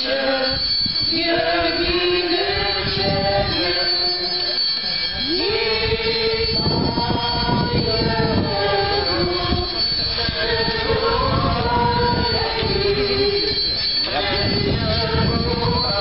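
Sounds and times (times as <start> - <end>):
brass band playing a hymn: 0.0 - 16.0.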